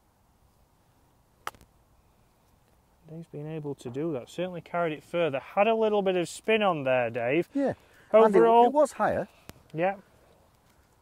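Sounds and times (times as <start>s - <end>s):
golf club striking ball: 1.4s - 1.7s.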